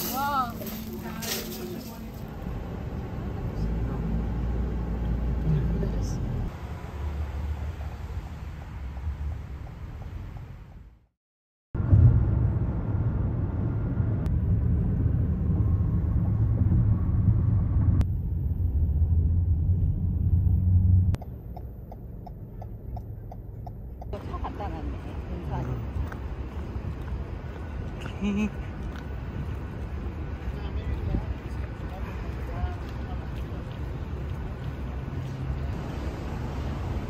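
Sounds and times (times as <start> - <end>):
car road noise rumble: 0.0 - 11.0, 11.8 - 37.0.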